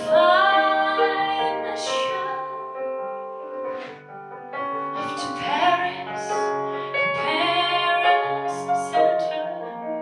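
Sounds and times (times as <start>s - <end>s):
woman singing: 0.0s - 2.6s, 5.0s - 10.0s
piano chords: 0.0s - 10.0s.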